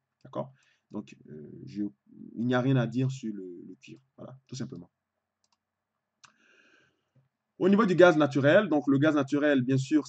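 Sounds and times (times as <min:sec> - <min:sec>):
computer mouse clicks: 0:05.4 - 0:06.4.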